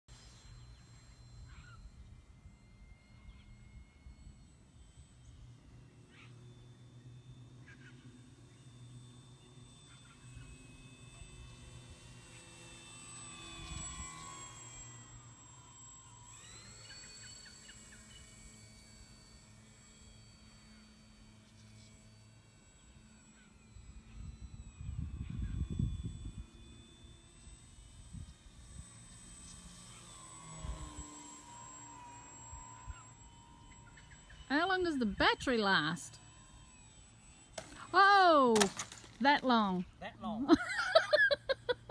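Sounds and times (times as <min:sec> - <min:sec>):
model plane motor whining: 0:00.0 - 0:41.9.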